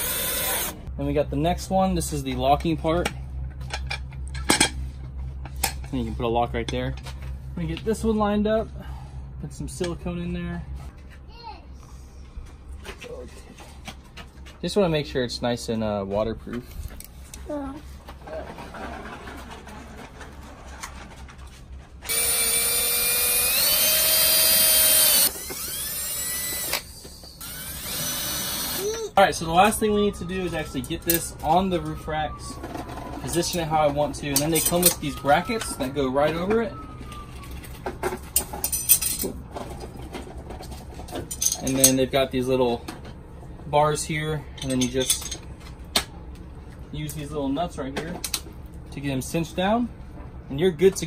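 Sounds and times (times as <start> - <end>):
cordless drill motor whining: 0.0 - 0.8, 22.1 - 29.2.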